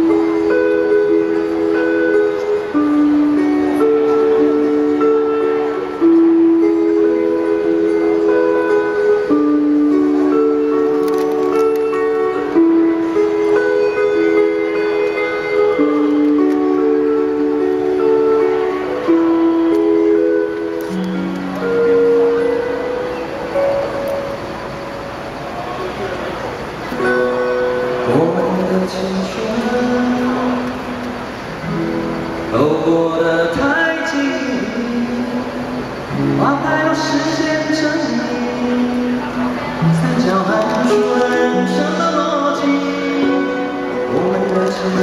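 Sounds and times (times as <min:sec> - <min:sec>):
acoustic guitar held notes: 0:00.0 - 0:45.0
background hiss: 0:00.0 - 0:45.0.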